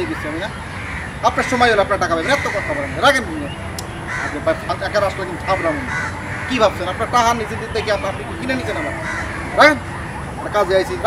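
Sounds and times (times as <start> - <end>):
crow cawing: 0.0 - 10.2
outdoor background hiss: 0.0 - 11.0.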